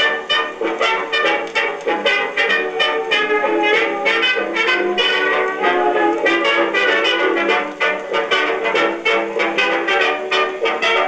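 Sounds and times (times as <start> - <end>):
jazz record on a phonograph: 0.0 - 11.0
trumpets and trombones: 0.0 - 11.0.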